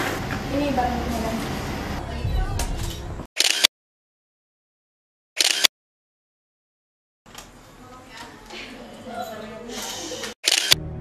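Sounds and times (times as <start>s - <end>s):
background music: 10.8s - 11.0s.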